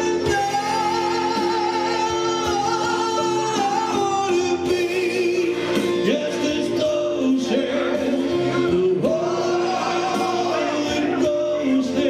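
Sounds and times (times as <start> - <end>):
instrumental accompaniment: 0.0 - 12.0
man singing: 0.0 - 12.0.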